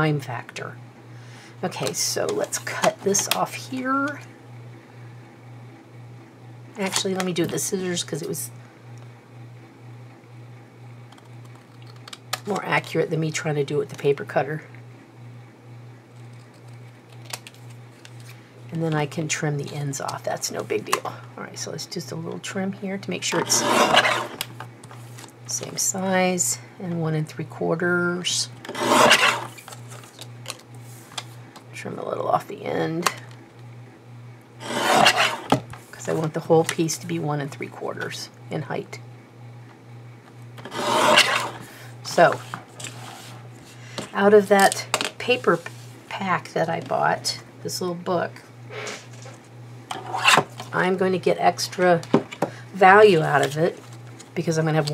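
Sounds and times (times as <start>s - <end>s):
steady low hum: 0.0s - 54.9s
scissors cutting paper: 23.4s - 24.4s, 28.7s - 29.8s, 34.6s - 35.5s, 40.6s - 41.6s.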